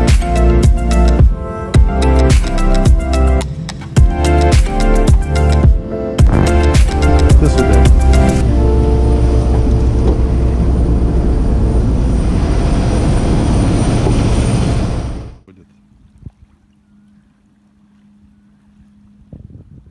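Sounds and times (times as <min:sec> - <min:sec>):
airliner engine roar with whine: 0:08.5 - 0:15.4.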